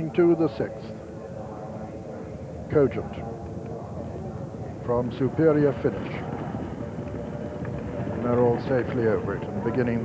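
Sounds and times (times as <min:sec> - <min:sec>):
horses galloping on heavy ground: 0:03.6 - 0:10.0.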